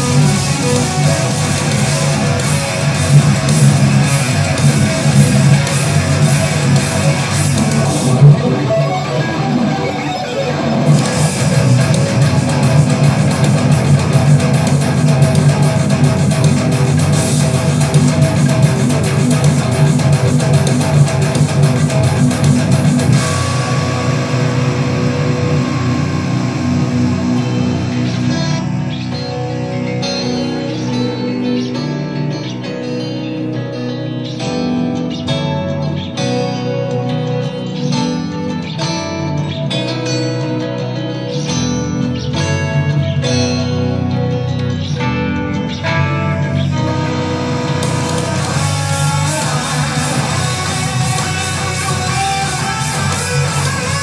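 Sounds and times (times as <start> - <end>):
amplified electric guitar: 0.0 - 54.0.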